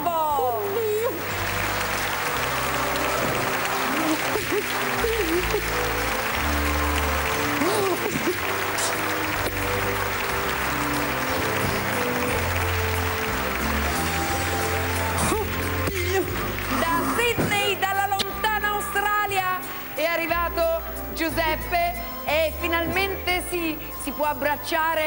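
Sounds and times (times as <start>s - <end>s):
audience applauding: 0.0s - 20.3s.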